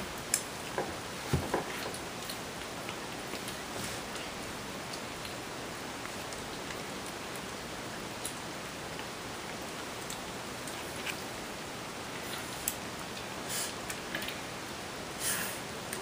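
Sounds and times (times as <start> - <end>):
steady hiss: 0.0 - 16.0
kittens eating clicks and smacks: 0.1 - 15.0, 15.6 - 16.0.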